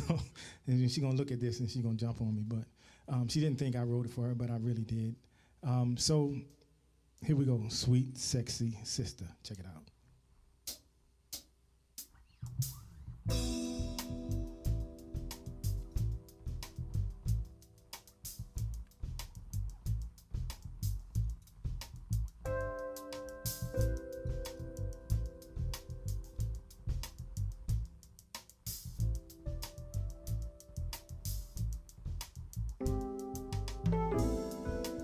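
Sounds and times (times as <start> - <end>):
drum kit groove: 10.6 - 35.0
low bass notes: 12.4 - 35.0
held keyboard chords: 13.3 - 35.0.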